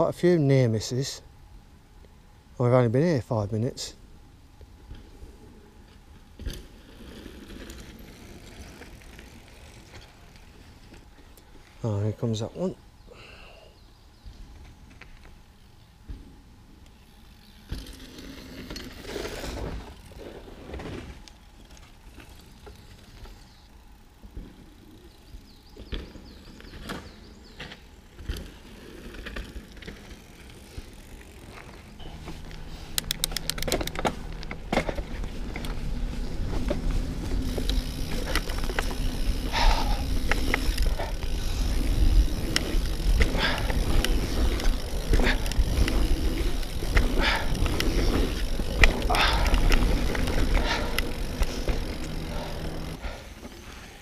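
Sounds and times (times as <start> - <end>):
bike tyres on dirt: 0.0 - 54.0
bike clicks and rattles: 5.8 - 11.8, 16.8 - 54.0
rapid ticking: 37.5 - 53.0.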